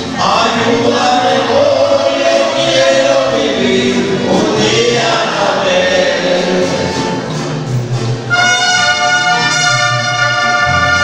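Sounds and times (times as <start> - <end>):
voices singing together: 0.0 - 7.8
mariachi band playing: 0.0 - 11.0.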